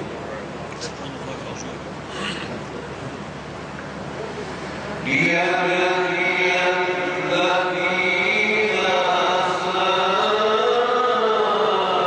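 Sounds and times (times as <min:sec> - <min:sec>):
man chanting melodically: 0:05.0 - 0:12.0.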